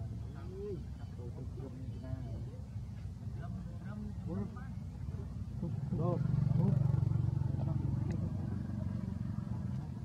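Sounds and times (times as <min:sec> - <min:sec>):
motorcycle engine passing: 0:05.5 - 0:10.0.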